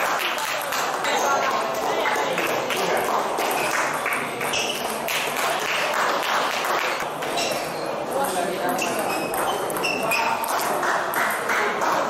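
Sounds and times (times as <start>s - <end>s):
table tennis ball ping: 0.0s - 12.0s
voices in sports hall: 0.0s - 12.0s.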